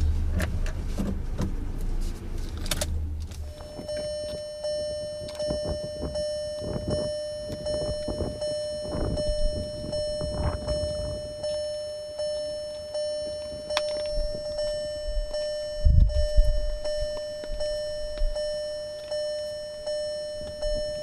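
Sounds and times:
car door warning chime: 3.4 - 21.0.

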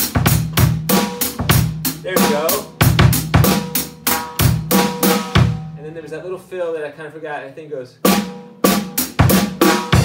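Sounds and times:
bass drum thuds: 0.0 - 5.8.

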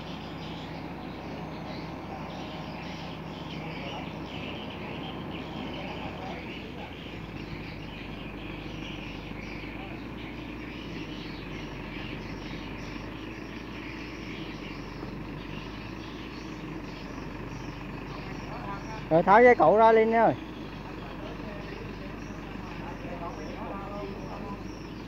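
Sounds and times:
truck engine idling: 0.0 - 25.0.

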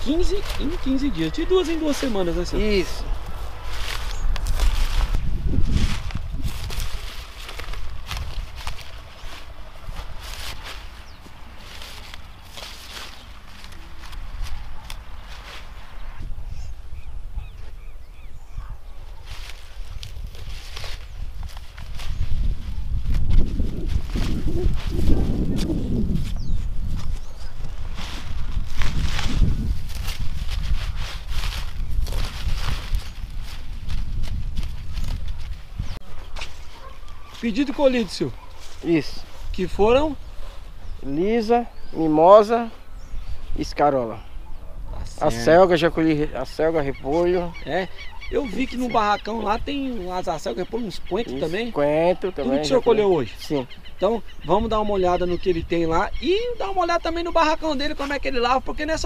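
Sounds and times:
gusty wind on microphone: 0.0 - 11.2, 14.2 - 37.0
leaves rustling and snapping: 0.0 - 16.0, 19.2 - 39.0.

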